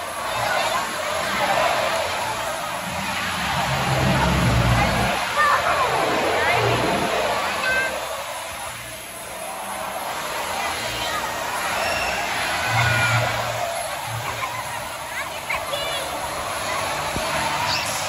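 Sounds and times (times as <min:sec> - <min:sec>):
crowd talking and calling out: 0:00.0 - 0:18.0
steady rushing noise: 0:00.0 - 0:18.0
children squealing: 0:10.5 - 0:18.0.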